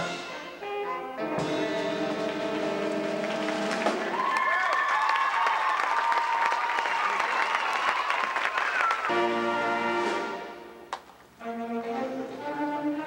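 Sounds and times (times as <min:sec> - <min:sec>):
held instrument notes: 0:00.0 - 0:04.1, 0:09.1 - 0:13.0
audience applauding: 0:02.3 - 0:09.9.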